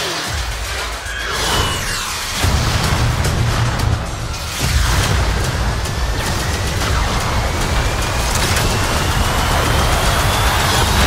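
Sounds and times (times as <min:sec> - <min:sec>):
rushing noise: 0:00.7 - 0:11.0
deep rumble: 0:02.3 - 0:11.0
thin rising whine: 0:06.4 - 0:11.0.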